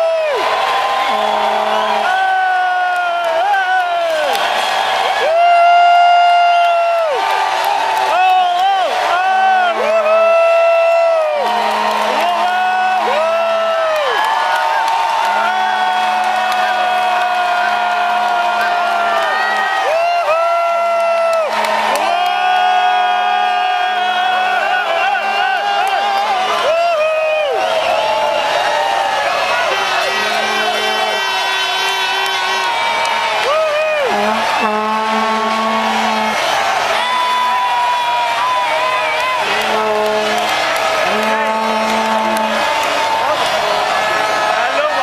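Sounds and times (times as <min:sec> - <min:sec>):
crowd cheering and whooping: 0:00.0 - 0:45.0
vuvuzela blasts: 0:00.0 - 0:45.0
other horns droning: 0:00.4 - 0:04.8, 0:08.8 - 0:26.9, 0:27.5 - 0:45.0
horn blowing: 0:00.5 - 0:07.8, 0:08.5 - 0:45.0.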